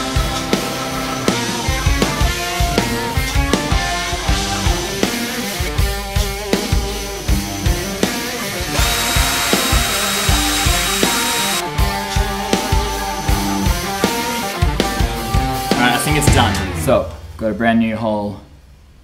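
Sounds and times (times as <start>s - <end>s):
background music with drum beat: 0.0s - 17.6s
cordless drill whining: 8.8s - 11.6s.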